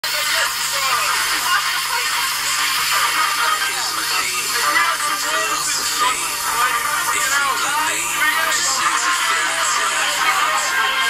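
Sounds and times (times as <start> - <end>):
faint voices: 0.0 - 11.0
tinny soundtrack from laptop speakers: 0.0 - 11.0.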